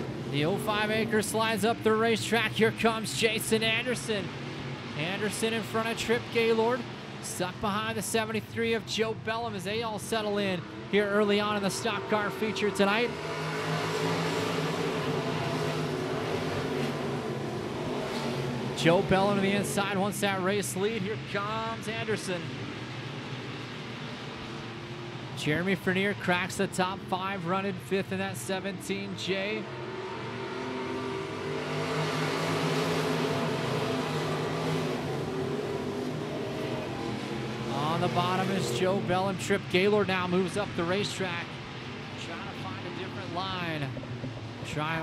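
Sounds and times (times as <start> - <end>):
race car engines droning: 0.0 - 45.0.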